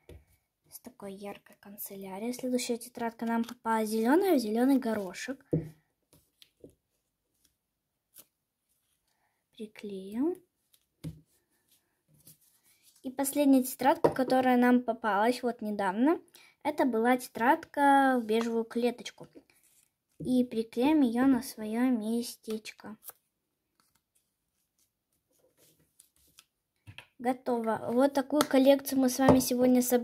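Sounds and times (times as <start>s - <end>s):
glue stick handled on paper: 22.5s - 26.6s
paper rustling: 23.0s - 26.6s.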